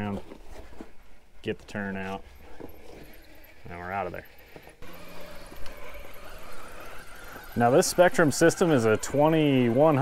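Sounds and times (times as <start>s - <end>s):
rc car motor whine: 1.8s - 10.0s
rc car driving over rocks: 2.1s - 10.0s.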